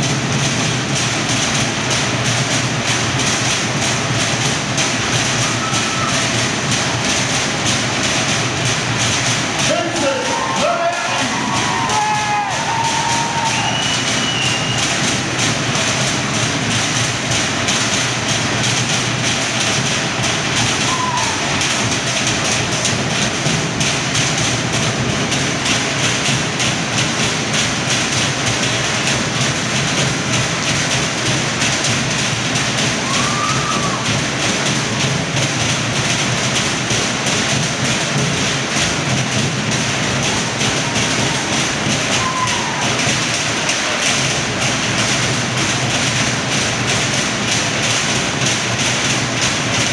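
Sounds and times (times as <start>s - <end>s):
rapid wooden log drumming: 0.0s - 49.9s
rising and falling calls: 11.7s - 14.9s.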